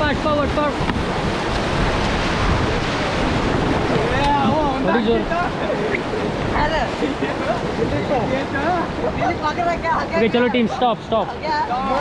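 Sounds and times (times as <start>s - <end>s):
river rapid rushing water: 0.0s - 12.0s
wind on microphone: 0.0s - 12.0s.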